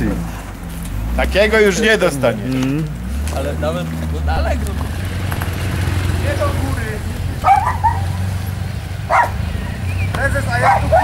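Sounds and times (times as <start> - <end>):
motorcycle engine rumbling: 0.0 - 11.0.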